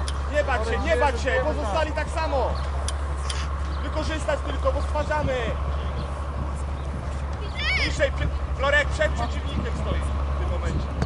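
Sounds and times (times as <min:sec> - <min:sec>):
steady low rumble: 0:00.0 - 0:11.0
voices calling and shouting: 0:00.0 - 0:11.0.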